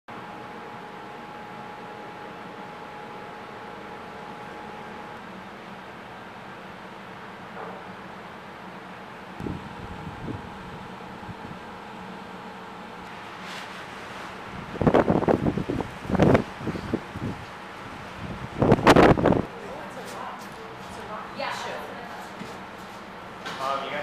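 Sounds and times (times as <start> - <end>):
outdoor hum and rush: 0.1 - 24.0.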